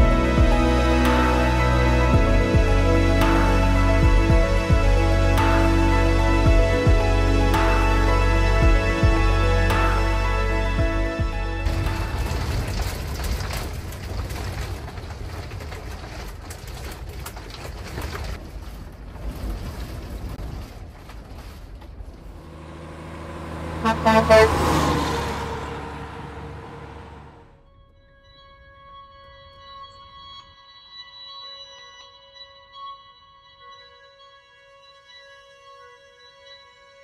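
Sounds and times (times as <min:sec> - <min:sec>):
soft background music: 0:00.0 - 0:12.3
wind and rain buffeting vehicle: 0:11.6 - 0:27.6
loud pitched sound: 0:22.4 - 0:27.5.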